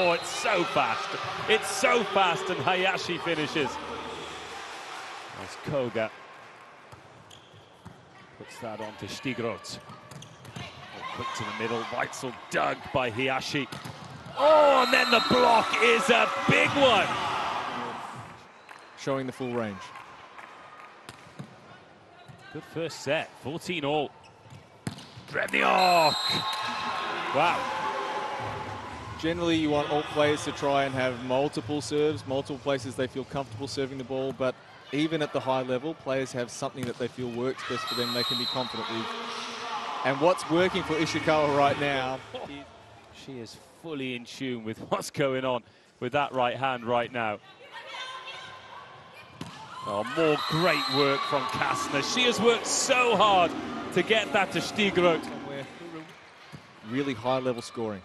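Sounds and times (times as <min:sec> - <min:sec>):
indoor arena ambience: 0:00.0 - 0:58.0.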